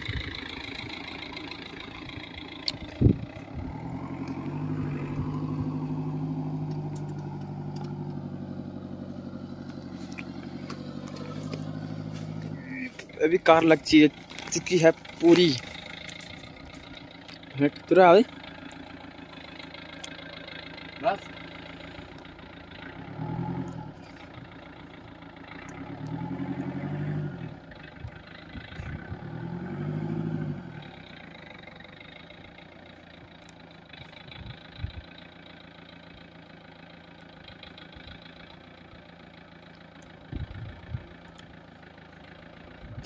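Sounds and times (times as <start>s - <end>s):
engine idling and revving: 0.0s - 43.0s.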